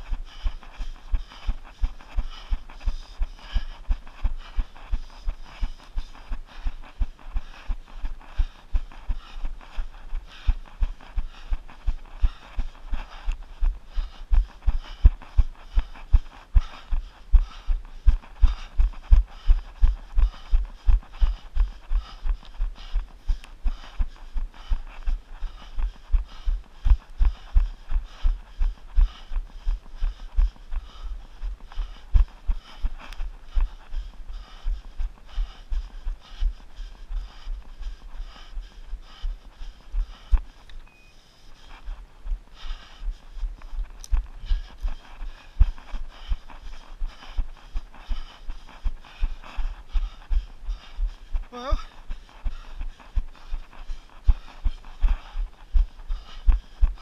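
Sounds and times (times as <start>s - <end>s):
running footsteps on grass: 0.0s - 57.0s
person saying oh: 51.6s - 51.8s.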